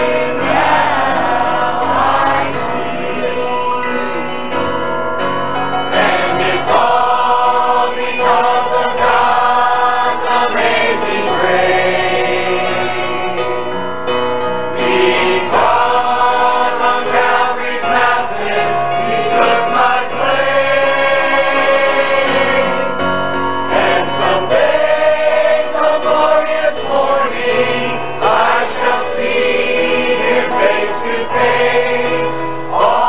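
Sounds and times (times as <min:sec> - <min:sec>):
mixed choir singing a hymn: 0:00.0 - 0:05.0, 0:05.6 - 0:33.0.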